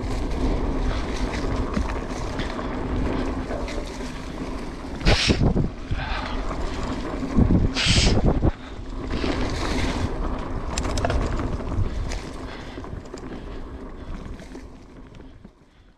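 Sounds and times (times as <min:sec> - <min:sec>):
wind on microphone: 0:00.0 - 0:13.4
bike jolts with tyre hiss: 0:00.0 - 0:15.0
bike tyres rumbling: 0:00.0 - 0:15.9.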